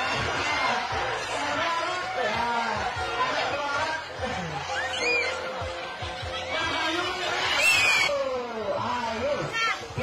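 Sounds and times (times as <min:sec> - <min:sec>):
overlapping voices talking: 0:00.0 - 0:08.2.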